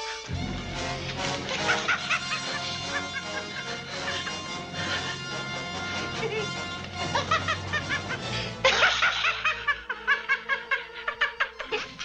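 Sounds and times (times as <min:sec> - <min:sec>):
orchestral film music: 0:00.0 - 0:12.0
woman laughing: 0:06.0 - 0:12.0.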